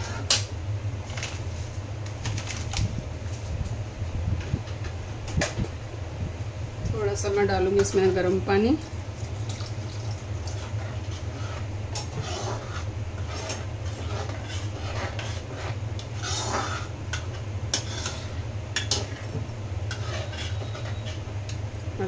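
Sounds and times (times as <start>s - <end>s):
steady low hum: 0.0s - 22.0s
ladle scraping metal pan: 10.5s - 19.3s, 19.9s - 21.3s.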